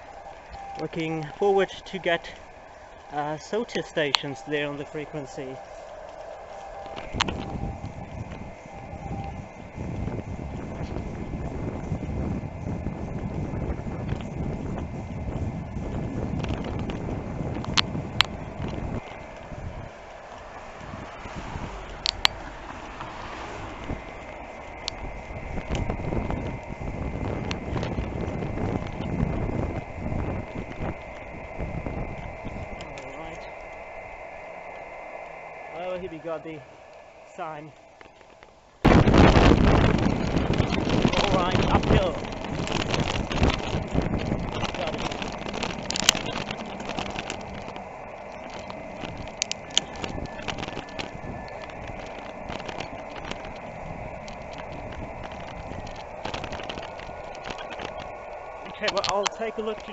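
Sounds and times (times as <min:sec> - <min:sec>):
indistinct radio voices: 0:00.0 - 0:12.4, 0:23.9 - 0:59.9
shortwave radio audio: 0:00.0 - 0:59.9
steady radio tones: 0:00.0 - 0:59.9
wind and road noise: 0:00.0 - 0:59.9.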